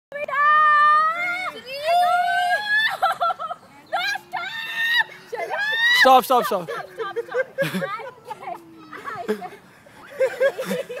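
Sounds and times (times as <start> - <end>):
girl screaming: 0.3 - 3.0, 4.0 - 6.1.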